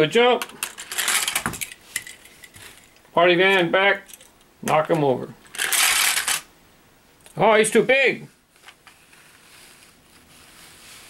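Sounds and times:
toy car rattling down plastic ramp: 0.6s - 1.7s, 5.5s - 6.4s.

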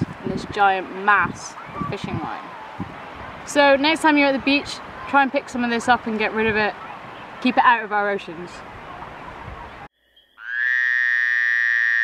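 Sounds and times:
buzzy frog call: 10.4s - 12.0s.

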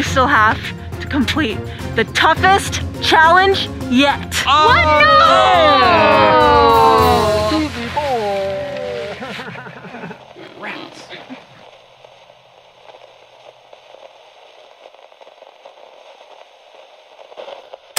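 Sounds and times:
voices crying out: 4.4s - 9.4s
faint static crackle: 7.4s - 17.9s.

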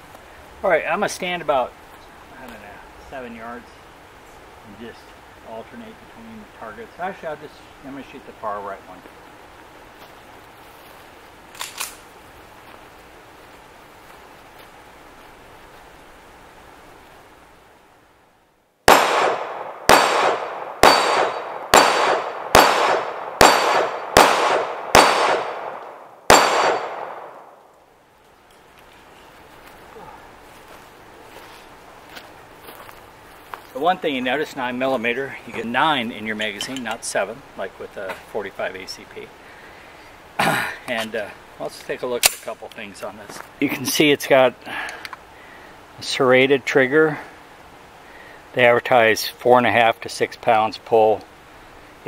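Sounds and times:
pistol shots echoing: 18.9s - 27.6s.

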